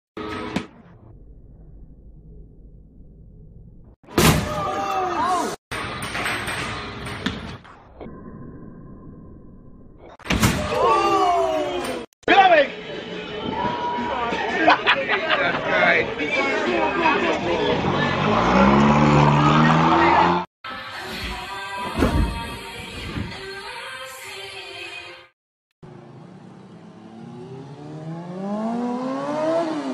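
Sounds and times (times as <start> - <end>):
loud voices: 10.6 - 20.5
arcade hall din: 16.1 - 20.4
music: 20.7 - 25.4.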